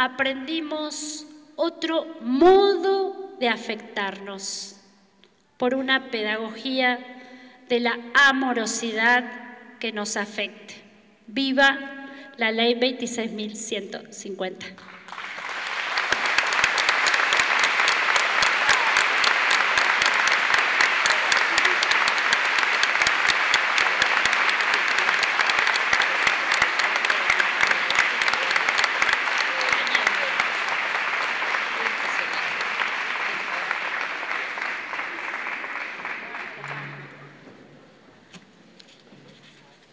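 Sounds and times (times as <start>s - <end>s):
audience applauding: 14.8s - 37.3s.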